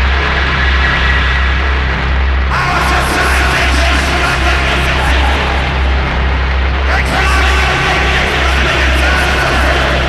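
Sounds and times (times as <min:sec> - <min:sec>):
harsh noise: 0:00.0 - 0:10.0
heavy low drone: 0:00.0 - 0:10.0.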